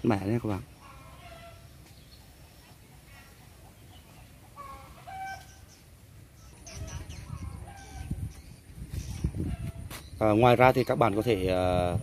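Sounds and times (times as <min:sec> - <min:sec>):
chickens clucking: 0:00.1 - 0:10.0.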